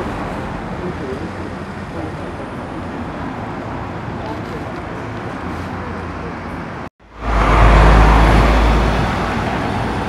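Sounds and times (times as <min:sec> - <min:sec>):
car passing: 0:02.5 - 0:10.0
lorry diesel engine rumbling past: 0:07.0 - 0:10.0.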